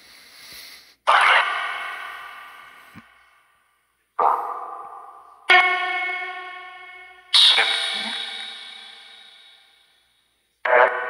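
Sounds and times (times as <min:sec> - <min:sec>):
ringing bursts with heavy echo: 0:01.1 - 0:03.6, 0:04.2 - 0:10.1, 0:10.7 - 0:11.0.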